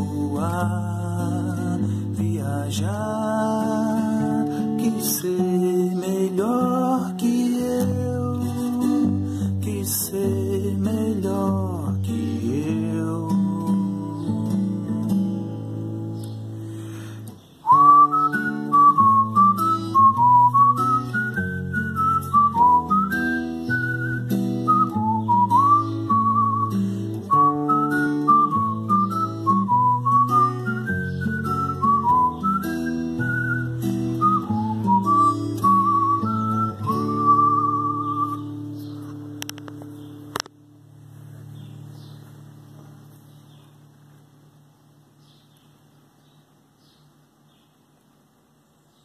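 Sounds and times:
strummed acoustic guitar: 0:00.0 - 0:44.7
person whistling a melody: 0:17.6 - 0:38.9
sharp click: 0:39.4 - 0:40.6.

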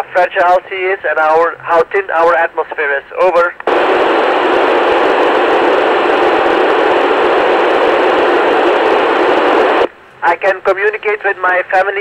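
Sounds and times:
radio receiver hiss: 0:01.7 - 0:12.0.

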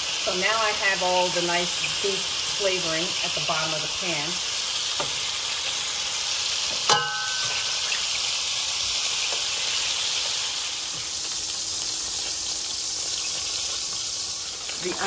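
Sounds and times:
fat sizzling in a pot: 0:00.0 - 0:15.0
metal tongs clinking on pot: 0:06.9 - 0:07.9.

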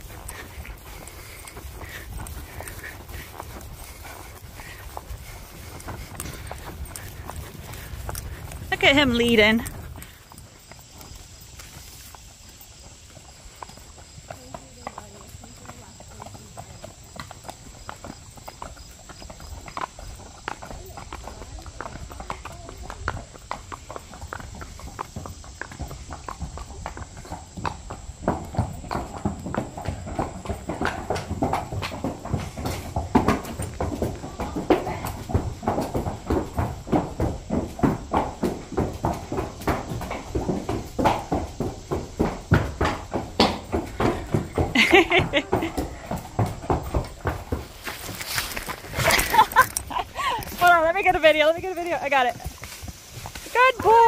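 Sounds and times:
hooves on wooden bridge deck: 0:00.0 - 0:54.0
horse hooves clip-clopping: 0:00.0 - 0:54.0.

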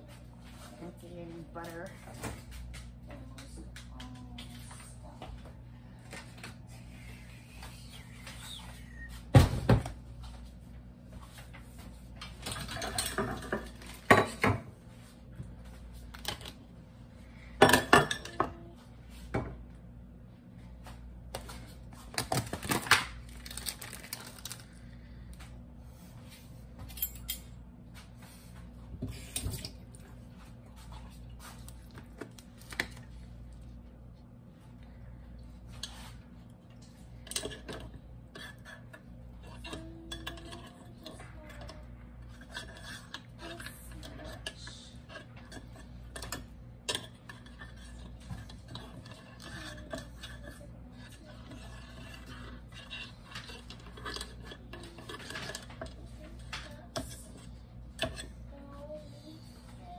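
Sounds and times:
steady low hum: 0:00.0 - 0:59.9
dishes and utensils clattering: 0:12.2 - 0:14.7, 0:17.6 - 0:18.7, 0:36.8 - 0:58.4.

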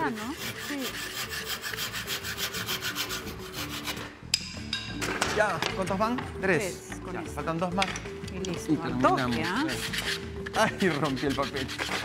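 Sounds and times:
handsaw cutting wood: 0:00.0 - 0:04.1, 0:09.0 - 0:12.0.

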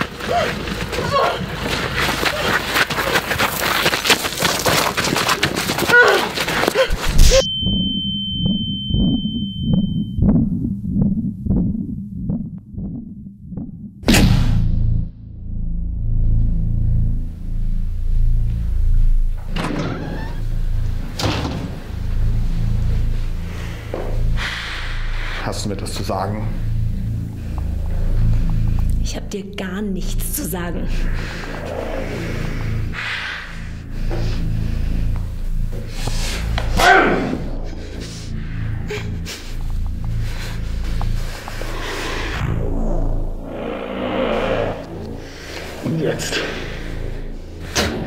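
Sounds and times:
low rumbling drone: 0:06.6 - 0:48.0
muffled low thumps: 0:06.9 - 0:19.7
high ear-ringing tone: 0:07.2 - 0:10.7
impact hit: 0:14.0 - 0:19.6.

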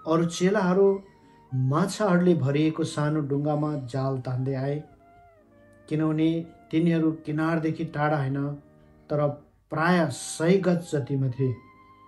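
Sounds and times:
man reading aloud in sing-song: 0:00.0 - 0:04.9, 0:05.9 - 0:11.7.

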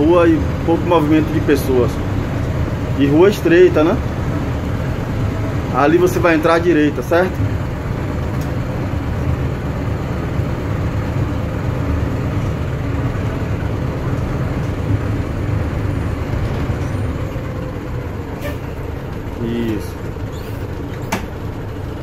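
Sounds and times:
bus diesel engine rumble: 0:00.0 - 0:22.0
road noise: 0:00.0 - 0:22.0.

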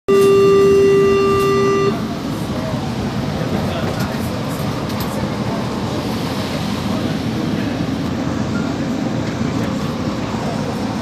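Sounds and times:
electronic warning tone: 0:00.1 - 0:02.1
low rumble of train interior: 0:00.1 - 0:11.0.

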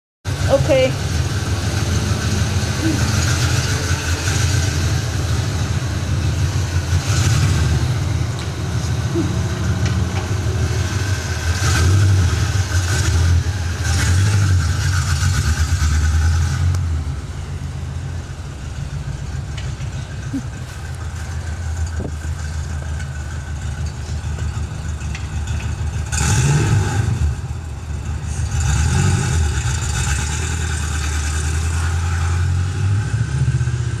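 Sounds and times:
car engine revving: 0:00.3 - 0:34.0.

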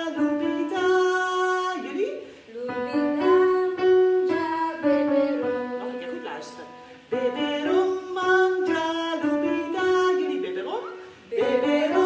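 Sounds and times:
piano accompaniment: 0:00.0 - 0:12.0
voices singing: 0:00.0 - 0:12.0.

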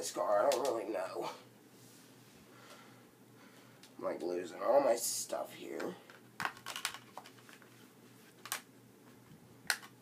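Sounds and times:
disc cases clicking: 0:05.8 - 0:07.7
packaging rustling: 0:06.1 - 0:08.6.

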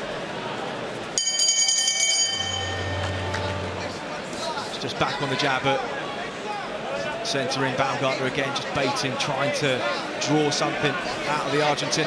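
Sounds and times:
boxing bell ringing: 0:01.2 - 0:04.1.

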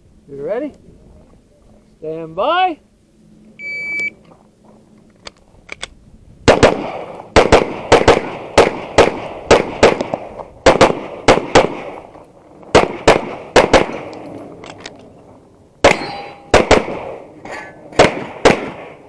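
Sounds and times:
rapid pistol fire: 0:06.4 - 0:12.0, 0:12.7 - 0:14.1, 0:15.8 - 0:17.2, 0:18.0 - 0:19.0
steel target ringing: 0:15.8 - 0:16.6.

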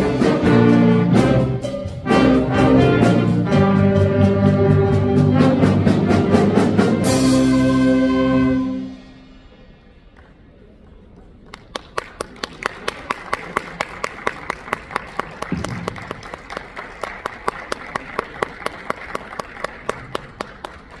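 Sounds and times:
audience applauding: 0:11.4 - 0:21.0
loud close clapping: 0:11.4 - 0:21.0.

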